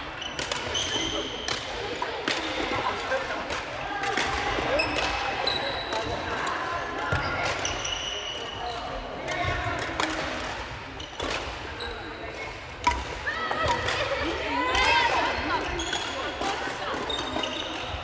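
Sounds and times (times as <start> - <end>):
players' voices: 0.0 - 18.0
rackets striking shuttlecocks: 0.3 - 5.3, 9.2 - 11.7, 12.3 - 18.0
sneakers squeaking on wooden floor: 4.7 - 6.0, 15.6 - 18.0.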